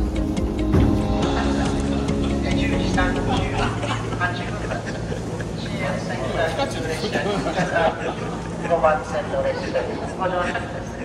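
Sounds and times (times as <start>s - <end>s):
train humming: 0.0s - 11.0s
people's voices: 1.2s - 11.0s.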